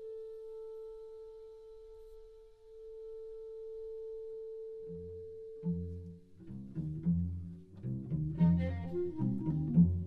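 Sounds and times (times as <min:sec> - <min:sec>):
clarinet long soft note: 0:00.0 - 0:06.7, 0:08.3 - 0:10.0.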